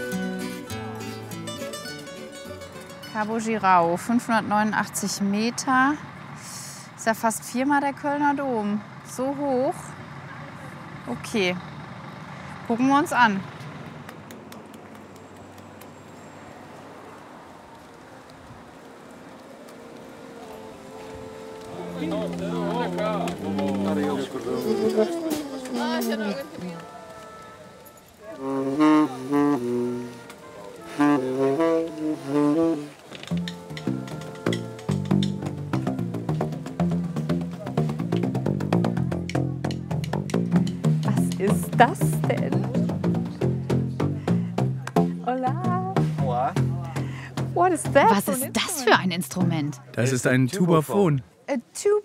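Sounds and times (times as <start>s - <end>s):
brass band playing: 19.4s - 50.8s
tuba and trumpet sliding notes: 19.8s - 26.0s, 26.8s - 36.2s
plastic pipe bass line: 33.3s - 48.3s.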